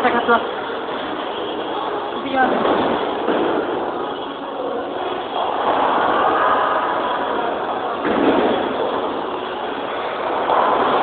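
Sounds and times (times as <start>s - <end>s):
bowling balls rolling on lanes: 0.0s - 11.0s
machinery running: 0.0s - 11.0s.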